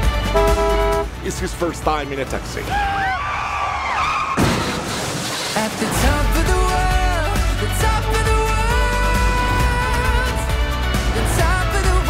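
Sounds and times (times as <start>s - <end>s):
sudden slam: 4.3s - 6.3s.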